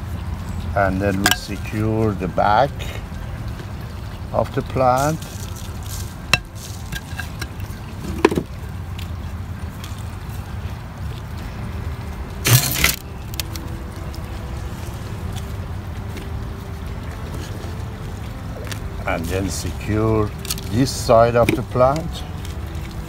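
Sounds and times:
hands rustling gritty soil: 0:00.1 - 0:23.0.

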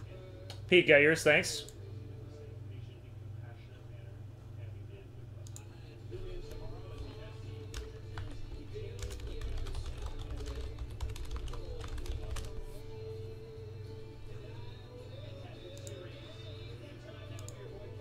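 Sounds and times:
faint background music: 0:00.0 - 0:18.0
steady low hum: 0:00.0 - 0:18.0
computer keyboard typing: 0:06.5 - 0:12.7.

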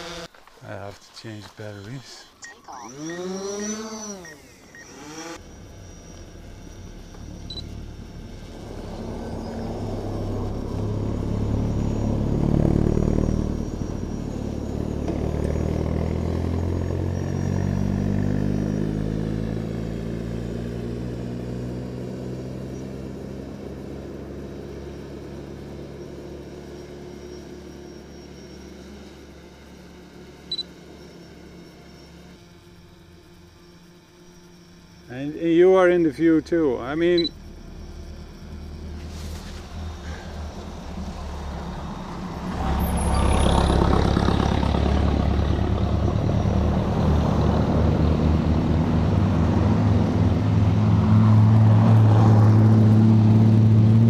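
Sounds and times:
cars driving past: 0:07.0 - 0:22.7, 0:38.8 - 0:54.0.

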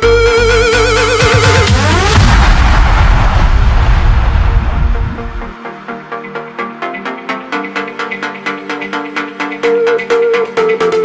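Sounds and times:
heavy bass: 0:00.0 - 0:05.6
rising synth sweep: 0:00.0 - 0:05.7
electro house music: 0:00.0 - 0:11.0
crash-like impact: 0:01.8 - 0:05.5.

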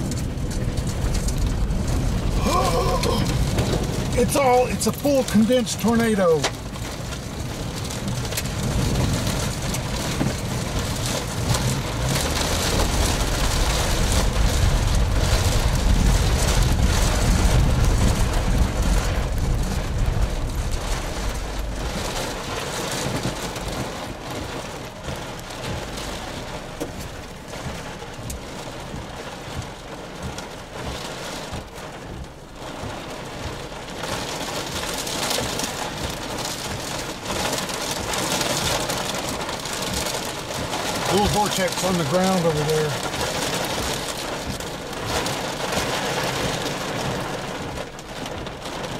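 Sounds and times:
heavy low rumble: 0:00.0 - 0:34.0
rain pelting a vehicle: 0:00.0 - 0:48.9.

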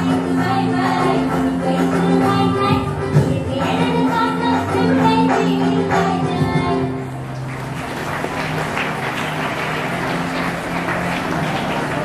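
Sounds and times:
applause: 0:07.2 - 0:12.0.

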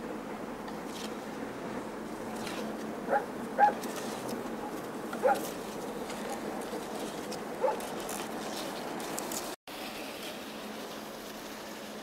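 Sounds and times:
dog barking: 0:03.1 - 0:03.8, 0:05.2 - 0:05.5, 0:07.6 - 0:07.8.

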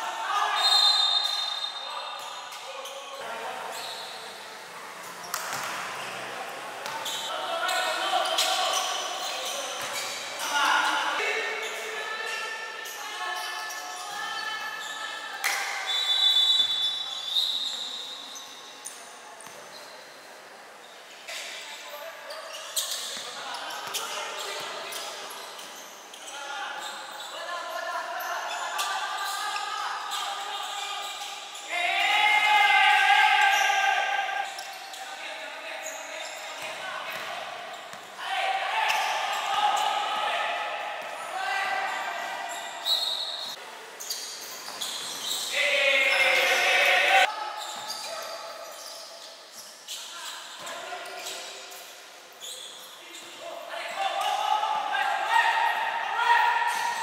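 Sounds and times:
players calling out: 0:27.8 - 0:48.8.

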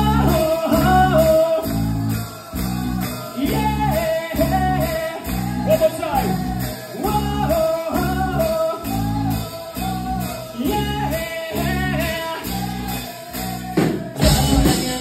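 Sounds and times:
man singing: 0:00.0 - 0:15.0
pop-punk band playing: 0:00.0 - 0:15.0.

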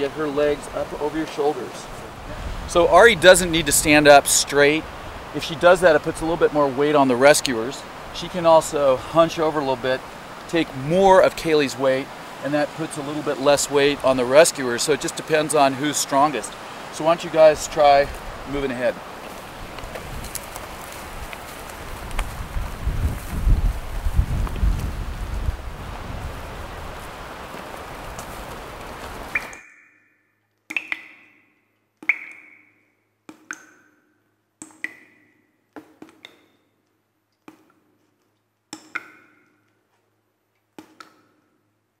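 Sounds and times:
outdoor background hiss: 0:00.0 - 0:42.0.

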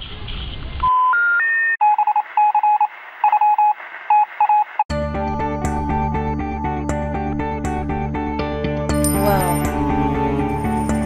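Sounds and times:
electronic phone beeps: 0:00.8 - 0:04.8.

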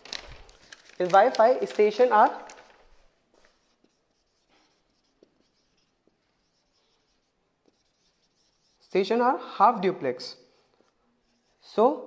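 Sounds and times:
marker pen writing on whiteboard: 0:03.4 - 0:09.1, 0:10.6 - 0:11.9.

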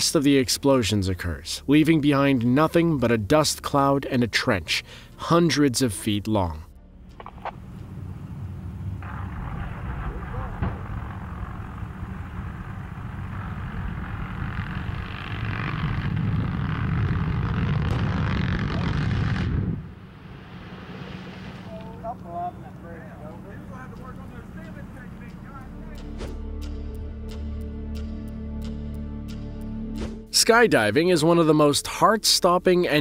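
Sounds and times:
rolling rumble of explosions: 0:07.2 - 0:26.2
sharp explosion cracks: 0:08.2 - 0:22.2.

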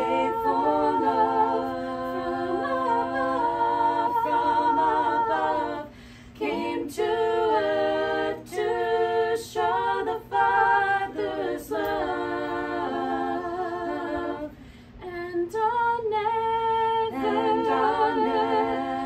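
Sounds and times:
women singing a cappella harmony: 0:00.0 - 0:19.0
singers breathing: 0:05.9 - 0:06.4, 0:14.5 - 0:15.0.

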